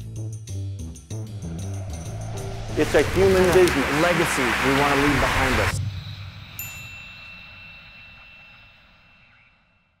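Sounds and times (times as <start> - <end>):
bright chime ringing: 6.3 - 9.9.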